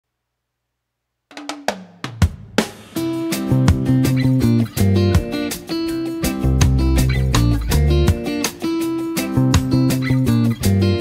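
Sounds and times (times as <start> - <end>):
sharp drum hits: 1.4 - 4.2.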